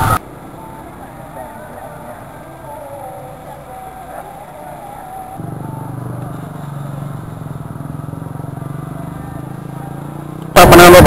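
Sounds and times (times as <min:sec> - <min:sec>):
faint outdoor voices: 0:00.0 - 0:11.0
small engine idling: 0:05.4 - 0:10.9.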